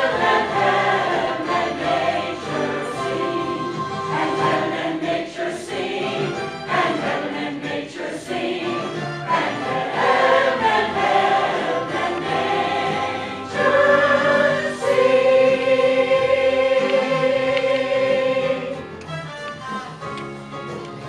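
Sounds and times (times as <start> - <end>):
mixed choir singing: 0.0 - 18.9.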